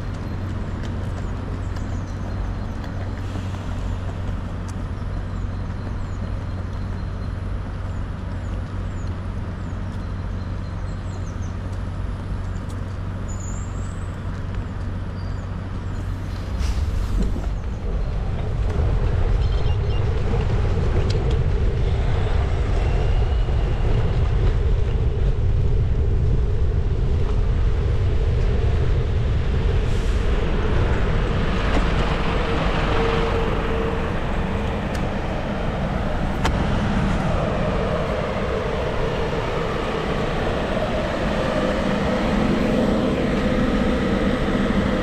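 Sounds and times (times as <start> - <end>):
low rumble: 0.0 - 45.0
road traffic engines humming: 0.0 - 45.0
wind on microphone: 16.0 - 45.0.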